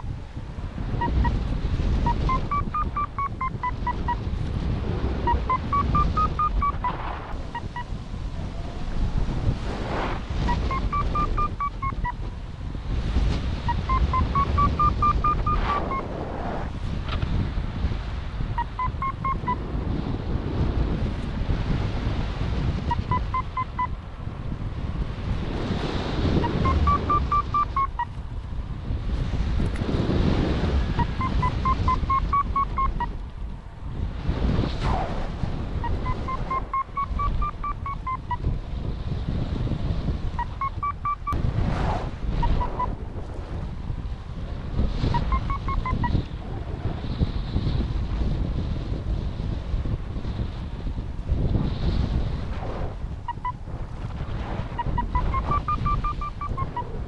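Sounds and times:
gusty wind on microphone: 0.0 - 57.0
variometer short beeps: 1.0 - 1.4, 2.0 - 4.2, 5.2 - 7.9, 10.4 - 12.2, 13.7 - 16.1, 18.6 - 19.6, 22.9 - 24.0, 26.4 - 28.1, 31.0 - 33.2, 35.8 - 38.5, 40.4 - 41.4, 42.4 - 43.0, 45.1 - 46.2, 53.3 - 53.6, 54.8 - 57.0.

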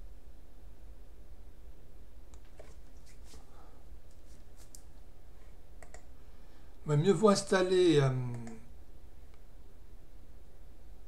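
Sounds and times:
low hum: 0.0 - 11.0
computer mouse click: 5.8 - 6.1, 8.3 - 8.6.

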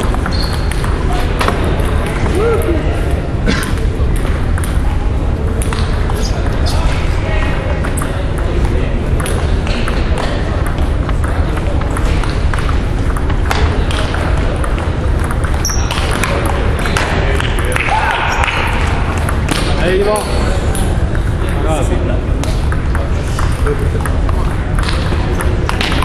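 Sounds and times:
table tennis ball clicking: 0.0 - 1.0, 4.1 - 4.8, 7.8 - 21.0, 22.4 - 26.0.

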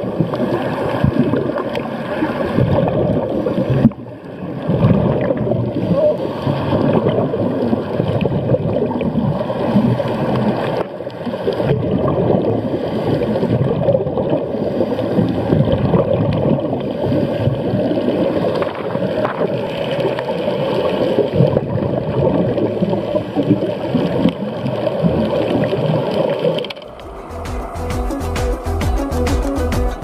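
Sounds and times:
bubbling and gurgling: 0.0 - 27.9
muffled underwater rumble: 0.0 - 28.8
background music with steady beat: 26.9 - 30.0.

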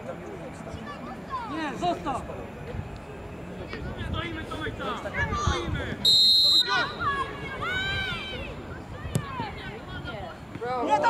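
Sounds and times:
spectators' voices: 0.0 - 11.0
referee's whistle blast: 6.0 - 7.0.

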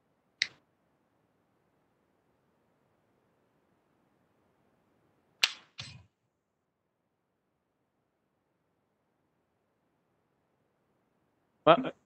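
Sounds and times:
sharp click: 5.4 - 6.1.

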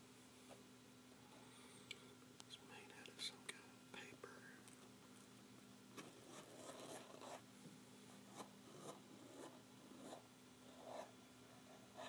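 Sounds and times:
soft whispering: 2.4 - 4.8.

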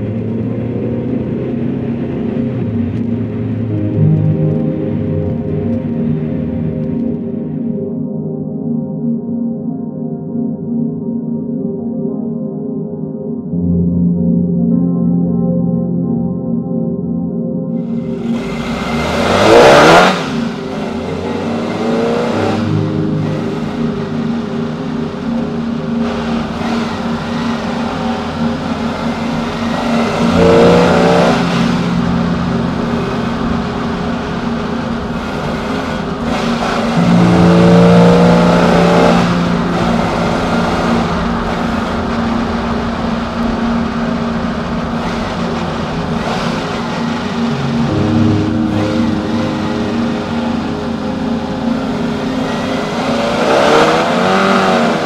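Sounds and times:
car engine accelerating: 0.0 - 7.4, 17.8 - 55.0.

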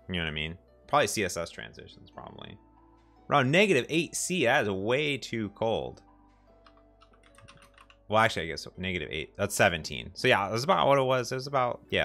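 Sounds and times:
faint keyboard typing: 6.6 - 8.1.

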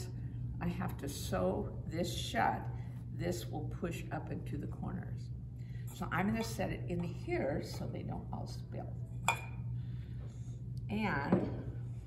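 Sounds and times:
steady low hum: 0.0 - 12.0
sharp clink on ceramic bowl: 9.2 - 9.6.

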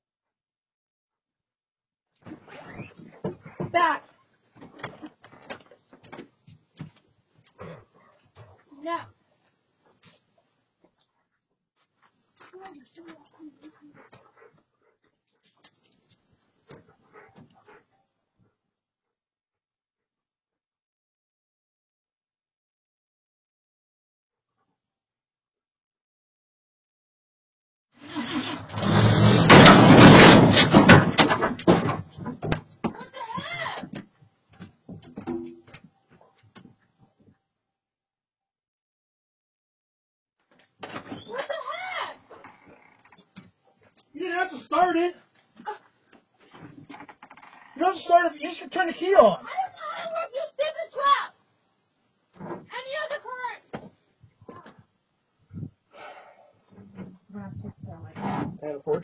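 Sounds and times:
small dog sounds: 12.4 - 16.1
lumber crashing through railing: 28.3 - 32.8
wood knocking and clattering: 28.9 - 33.0, 33.8 - 36.8
person speaking: 47.8 - 51.3.

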